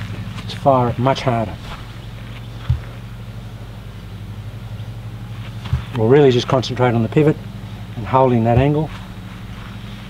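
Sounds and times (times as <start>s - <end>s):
soft low thumps: 0.0s - 6.6s, 7.3s - 10.0s
low motor hum: 0.0s - 10.0s.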